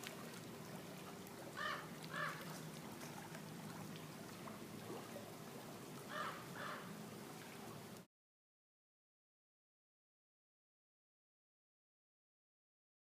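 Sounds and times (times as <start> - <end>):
bird harsh calls: 1.6 - 2.4, 6.1 - 6.9.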